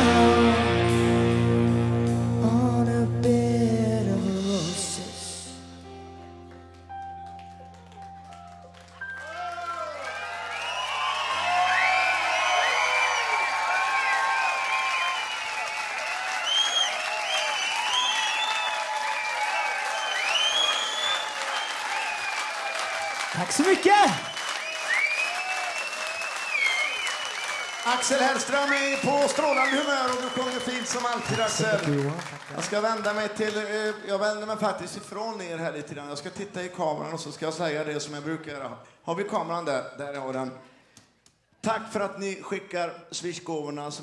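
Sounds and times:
keyboard chord: 0.0s - 9.6s
audience applauding: 6.7s - 34.6s
audience cheering and whistling: 9.0s - 32.1s
loud shout: 9.2s - 20.4s, 22.5s - 24.3s.

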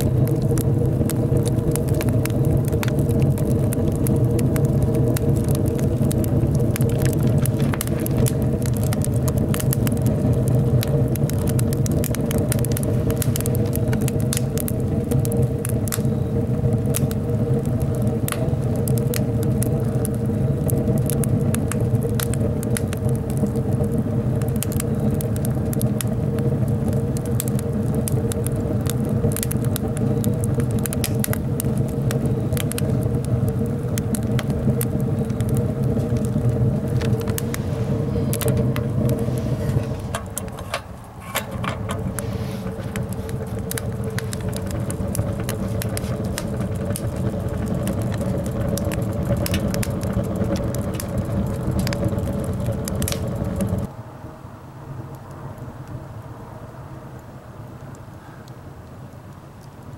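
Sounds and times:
burning logs crackling and popping: 0.0s - 54.0s, 55.0s - 56.4s, 57.1s - 59.9s
fire draft rumbling: 0.0s - 59.9s.

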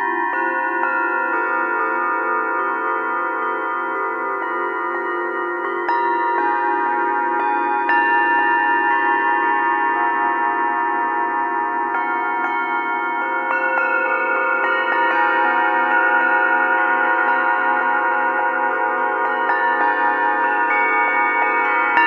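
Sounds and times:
singing bowls struck with mallets: 0.0s - 22.0s.

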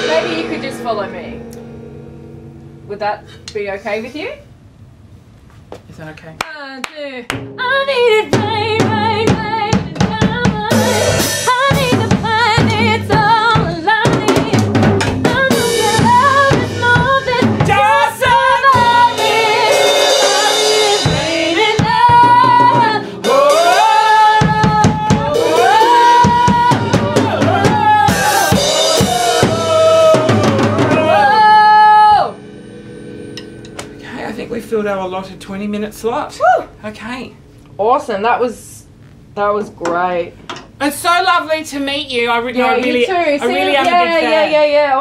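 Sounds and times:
woman singing with vibrato: 0.0s - 1.9s, 6.5s - 32.7s, 42.3s - 45.0s
drum kit played with sticks: 0.0s - 4.4s, 7.3s - 36.8s.

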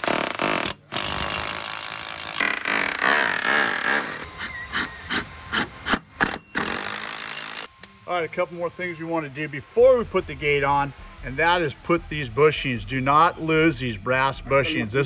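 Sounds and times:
electric drill boring into wall: 0.0s - 7.7s.

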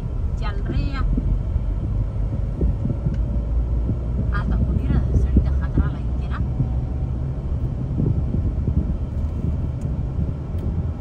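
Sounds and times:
car road rumble in tunnel: 0.0s - 11.0s.

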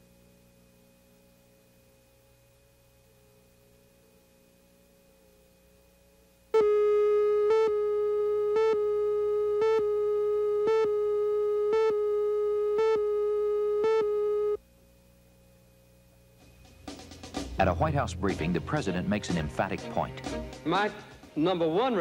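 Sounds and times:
steady electronic tone: 6.6s - 14.6s, 16.2s - 20.2s.

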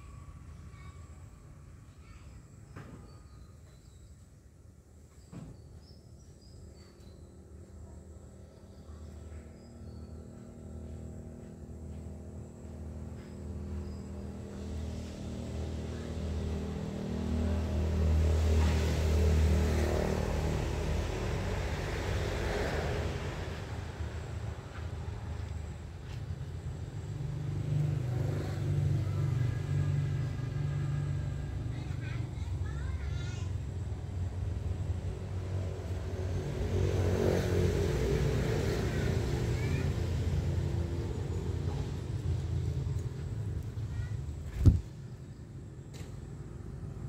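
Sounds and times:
higher engine hum: 6.4s - 47.0s
vehicle engine hum: 6.8s - 47.0s.

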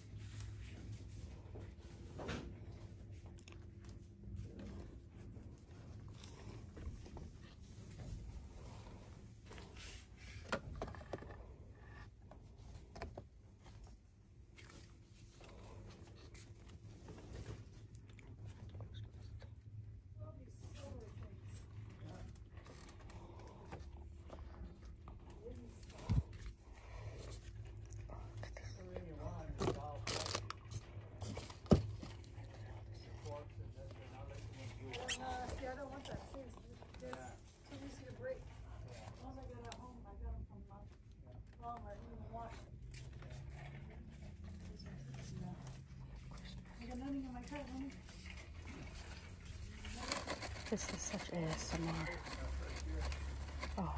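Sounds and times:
packaged goods rustling: 46.7s - 53.9s.

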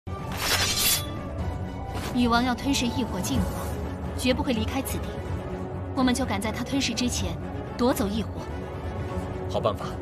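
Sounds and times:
dramatic background music: 0.1s - 10.0s.

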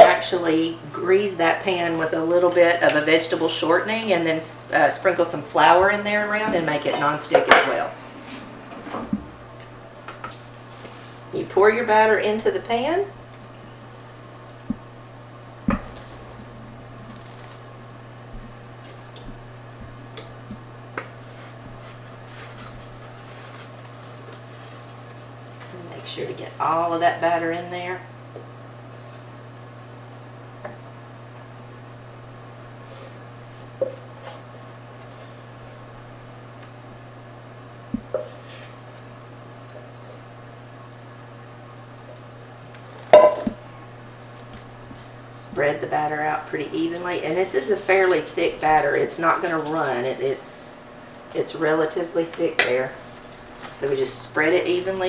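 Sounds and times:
steady low hum: 0.0s - 55.0s
metal bowl clattering: 43.2s - 43.6s.

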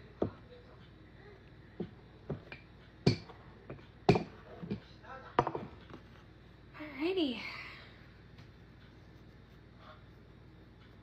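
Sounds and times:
knocks on a tabletop: 5.4s - 5.7s.

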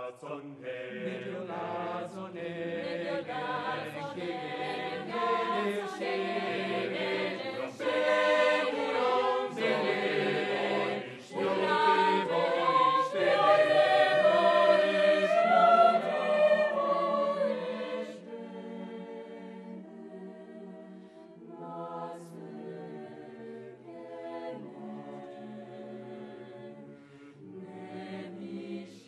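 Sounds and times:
mixed choir singing a cappella: 0.0s - 29.0s.

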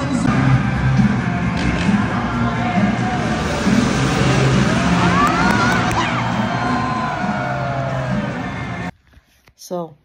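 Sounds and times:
crowd noise: 0.0s - 8.9s
loud arena music: 0.0s - 8.9s
dirt bike engine revving: 0.4s - 8.8s.

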